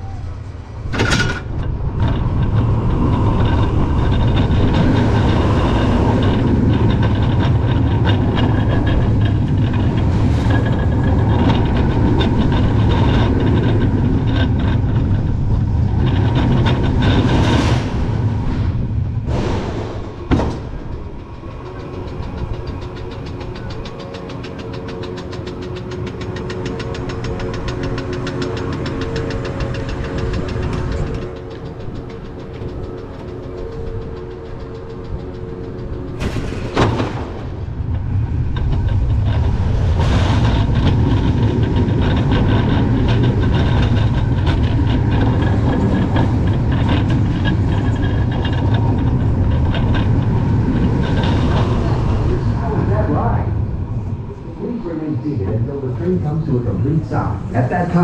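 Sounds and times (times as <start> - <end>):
roller coaster wheels rumbling: 0.0 - 58.0
steady hum: 0.0 - 58.0
wind on camera: 0.0 - 58.0
fast regular clicking: 20.8 - 53.4.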